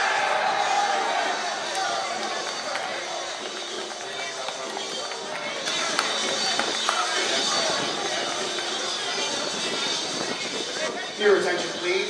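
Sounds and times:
music: 0.0s - 12.0s
players shouting and cheering: 0.0s - 12.0s
sharp claps: 1.7s - 7.6s.

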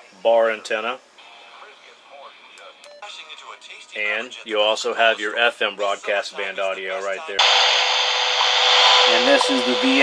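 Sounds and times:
steady radio hiss: 0.0s - 10.0s
faint radio talk: 0.6s - 7.4s.

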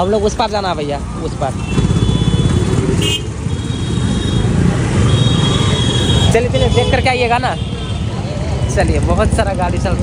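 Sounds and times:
motorcycle engines rumbling: 0.0s - 10.0s.

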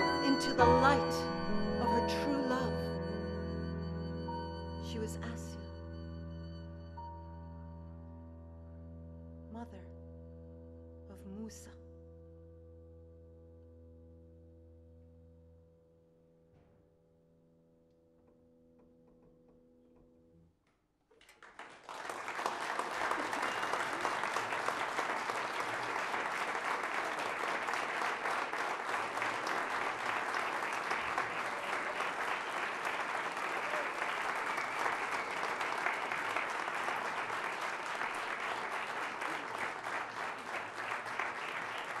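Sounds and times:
audience applauding: 21.2s - 42.0s.

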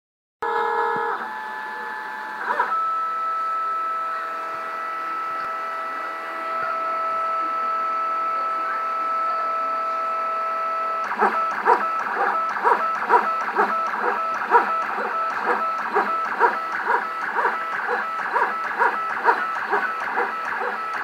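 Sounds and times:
stepper motors whining: 0.4s - 21.0s.

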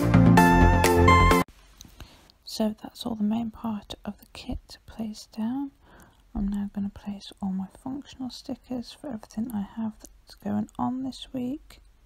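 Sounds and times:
woman speaking softly: 2.4s - 11.8s.

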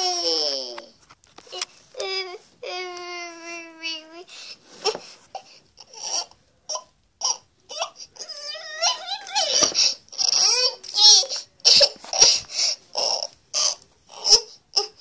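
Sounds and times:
baby-like crying voice: 1.5s - 15.0s.

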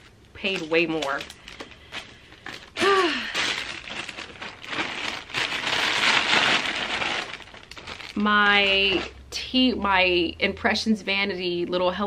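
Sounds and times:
plastic packaging crinkling: 0.0s - 9.2s.

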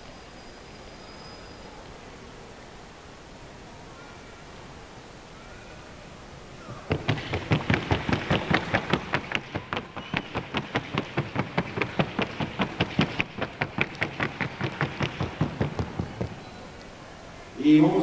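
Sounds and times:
rapid horse hoofbeats: 6.7s - 16.8s.

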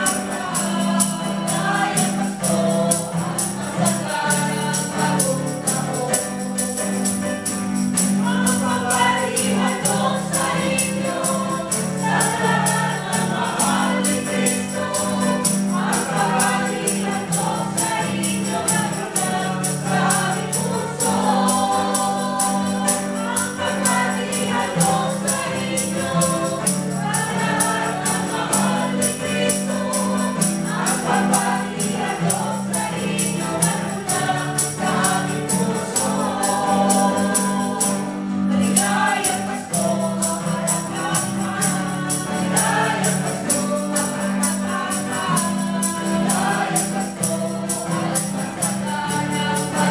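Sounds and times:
choir singing gospel: 0.0s - 49.9s
strummed acoustic guitar: 0.0s - 49.9s
tambourine beat: 0.0s - 49.9s.

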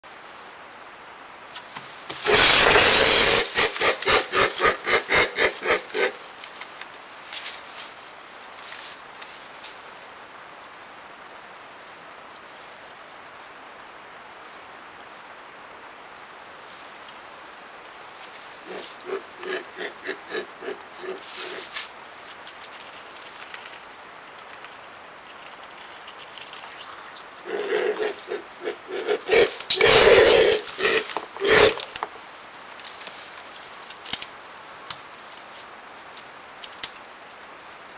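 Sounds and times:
vultures hissing: 2.1s - 6.3s, 18.6s - 21.9s, 26.6s - 32.0s.

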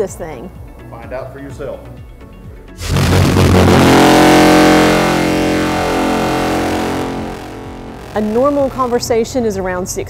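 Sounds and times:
deep ship's whistle blast: 2.8s - 9.1s.

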